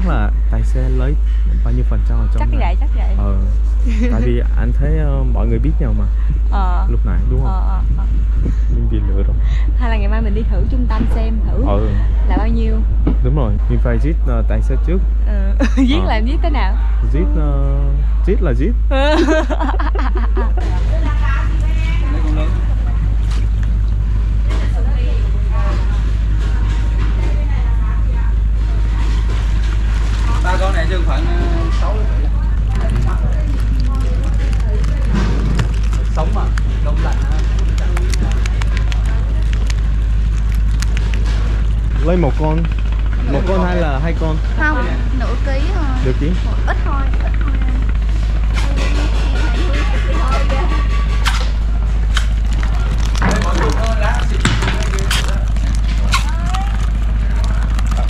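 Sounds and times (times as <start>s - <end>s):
person speaking: 0.0s - 22.9s, 30.2s - 40.0s, 42.0s - 47.9s
motor droning: 0.0s - 58.0s
water splashing: 28.6s - 43.2s, 48.0s - 58.0s.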